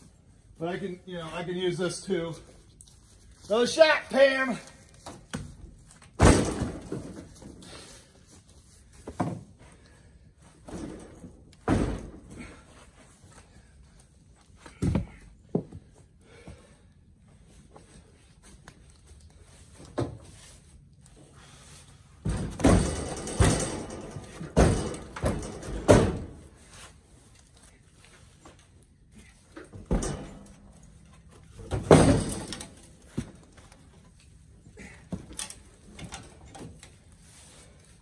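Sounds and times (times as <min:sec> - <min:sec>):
loud thuds and knocks: 0:06.2 - 0:07.2, 0:22.2 - 0:26.4.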